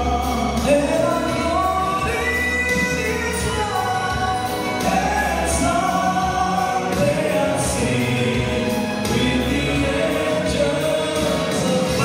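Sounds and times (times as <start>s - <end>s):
male ensemble singing a hymn: 0.0s - 12.0s.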